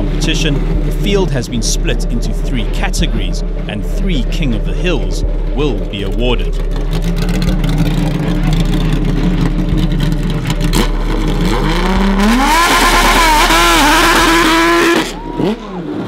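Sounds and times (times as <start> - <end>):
racing car engine revving: 0.0 - 16.0.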